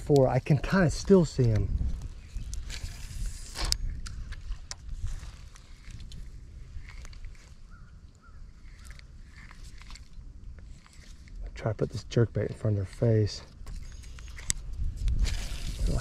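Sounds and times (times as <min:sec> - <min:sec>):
fishing line hissing off spool: 0:15.2 - 0:16.0.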